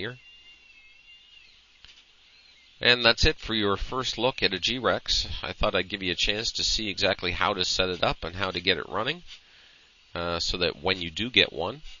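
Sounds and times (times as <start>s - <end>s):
stepper motors whining: 0.0s - 9.1s
man speaking: 2.8s - 9.2s, 10.2s - 11.9s.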